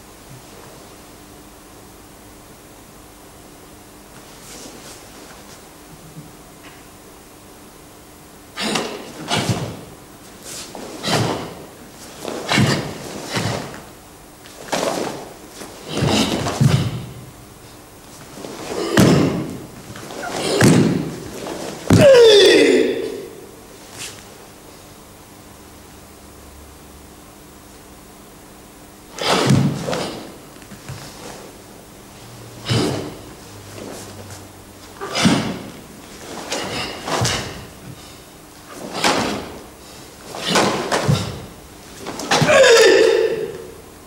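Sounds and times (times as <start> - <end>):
bare feet landing on wooden floor: 8.6 - 9.9, 10.5 - 13.9, 14.5 - 17.2, 18.2 - 22.2, 29.2 - 31.2, 35.0 - 39.6, 40.3 - 42.6.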